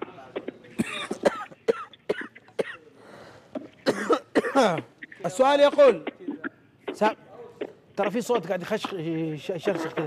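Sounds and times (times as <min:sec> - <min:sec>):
man coughing: 0:00.8 - 0:02.9, 0:03.8 - 0:04.9.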